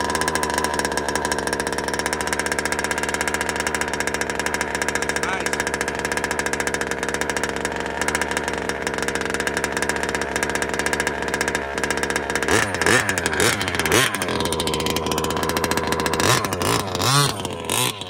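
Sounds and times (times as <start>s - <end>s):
two-stroke engine idling and revving: 0.0s - 18.0s.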